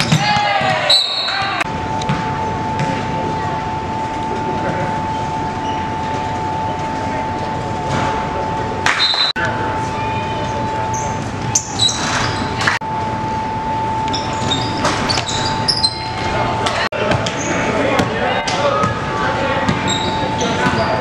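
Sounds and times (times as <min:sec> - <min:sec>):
sneakers squeaking on court: 0:00.0 - 0:03.4, 0:10.5 - 0:12.7, 0:14.1 - 0:16.4, 0:17.0 - 0:21.0
spectators chattering: 0:00.8 - 0:13.0, 0:15.4 - 0:21.0
steady hum: 0:01.6 - 0:21.0.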